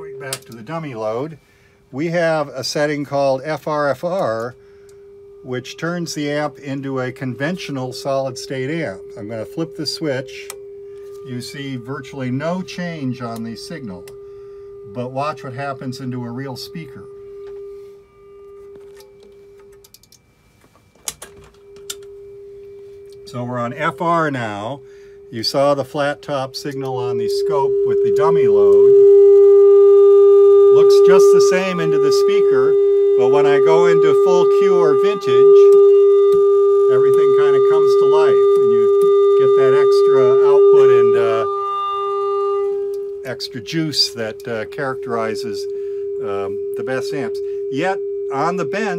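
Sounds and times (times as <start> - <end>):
constant mid-pitched test tone: 0.0 - 48.9.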